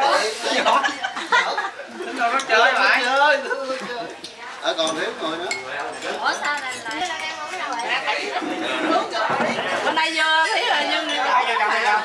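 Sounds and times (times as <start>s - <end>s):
people talking over one another: 0.0s - 12.0s
chopsticks and dishes clinking: 2.3s - 3.2s, 4.1s - 12.0s.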